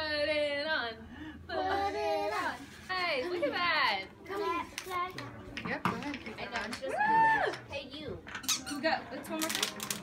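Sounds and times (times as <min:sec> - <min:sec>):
faint room chatter: 0:00.0 - 0:10.0.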